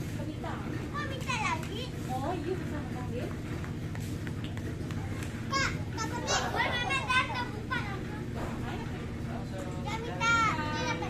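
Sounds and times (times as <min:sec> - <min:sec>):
young children chattering: 0:00.1 - 0:03.2, 0:04.8 - 0:11.0.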